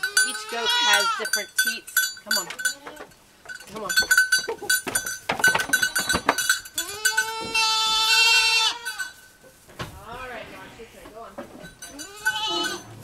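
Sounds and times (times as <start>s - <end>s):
goat bleating: 0.0s - 3.2s, 5.6s - 9.2s, 10.0s - 13.0s
goat hooves knocking and clattering: 0.0s - 13.0s.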